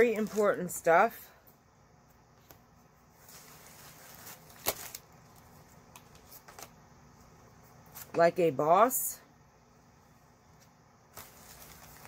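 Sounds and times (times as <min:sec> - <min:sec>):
paper rustling: 0:00.0 - 0:00.6, 0:03.2 - 0:06.8, 0:11.1 - 0:12.0.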